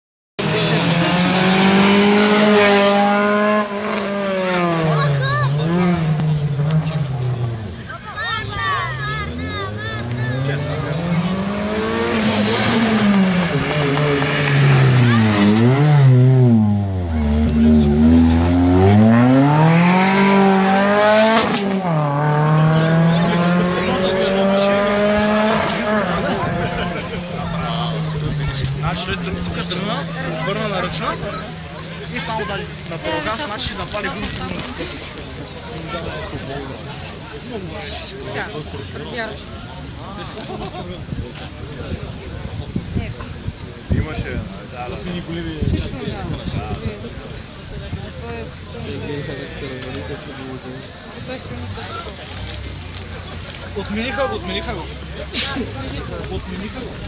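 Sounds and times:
rally car engine revving: 0.4s - 7.9s, 9.2s - 36.0s.

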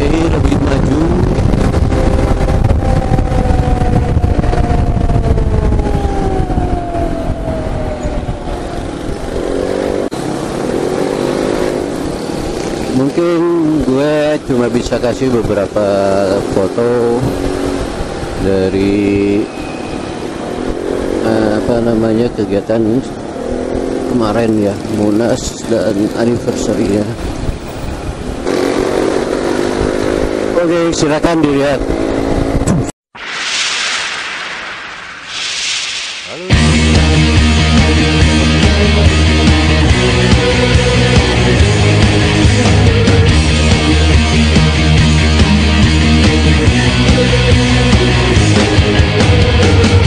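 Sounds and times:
wind noise: 0.0s - 10.1s, 27.1s - 28.5s, 31.8s - 38.2s.

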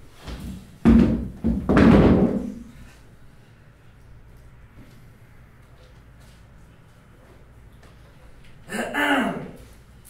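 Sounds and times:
heavy thumps: 0.3s - 2.7s.

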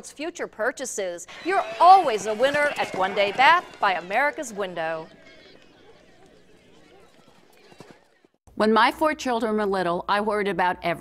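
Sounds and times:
galloping horse hoofbeats: 1.3s - 8.4s.

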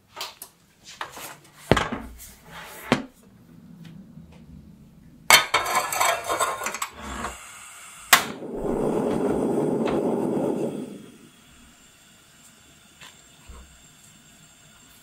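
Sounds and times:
gas burner rushing: 2.1s - 15.0s.

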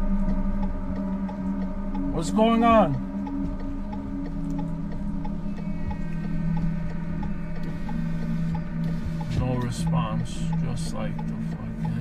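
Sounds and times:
drone of held tones: 0.0s - 12.0s
faint ticks: 0.0s - 12.0s.

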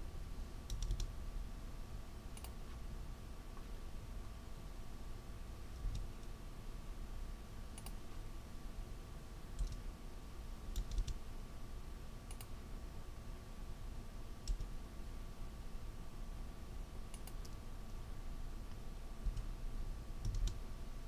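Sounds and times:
faint background hum: 0.0s - 21.0s
computer mouse clicks: 0.7s - 1.2s, 2.3s - 2.8s, 5.8s - 6.4s, 7.7s - 8.2s, 9.5s - 9.9s, 10.7s - 11.2s, 12.2s - 12.6s, 14.4s - 14.8s, 17.1s - 17.6s, 19.2s - 19.5s, 20.2s - 20.6s.

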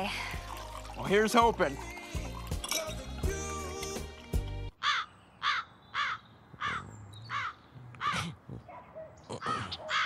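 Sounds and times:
crow cawing: 4.8s - 8.3s, 9.4s - 10.0s.

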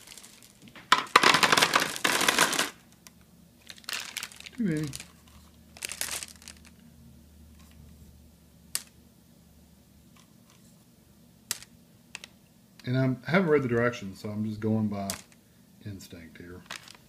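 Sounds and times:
candy rustling in bowl: 0.0s - 2.8s, 3.6s - 6.8s, 16.6s - 17.0s.

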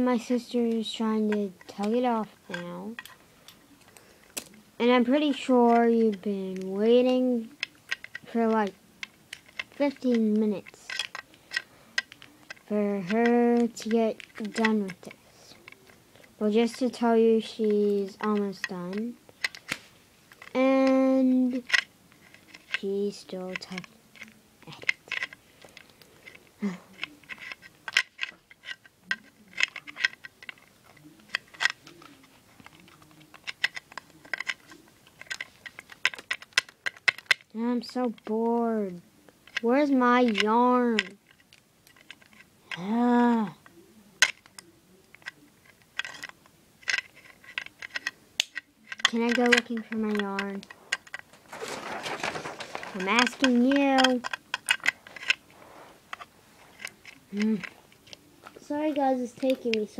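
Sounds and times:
person speaking: 0.0s - 3.2s, 3.8s - 8.8s, 9.4s - 19.2s, 20.4s - 25.4s, 26.6s - 27.6s, 37.5s - 41.2s, 42.6s - 45.4s, 48.8s - 59.9s
fingers clicking plastic toy: 0.1s - 3.2s, 3.8s - 51.3s, 52.2s - 55.4s, 56.8s - 59.9s.

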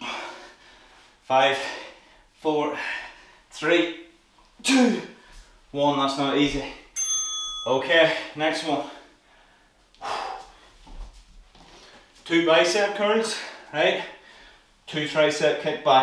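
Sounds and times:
man speaking: 1.3s - 6.9s, 7.7s - 9.1s, 12.2s - 14.2s, 14.9s - 16.0s
interval timer ding: 7.0s - 7.9s.

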